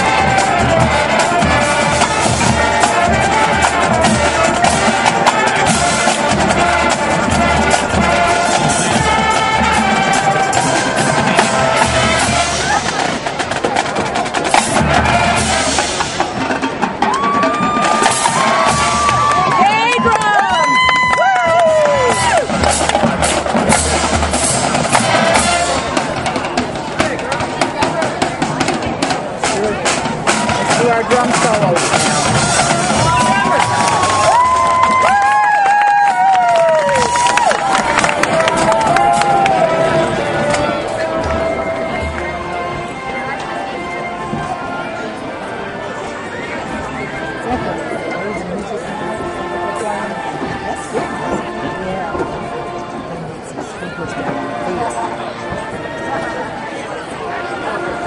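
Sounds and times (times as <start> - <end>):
snare and bass drums: 0.0 - 36.0
marching band playing: 0.0 - 58.0.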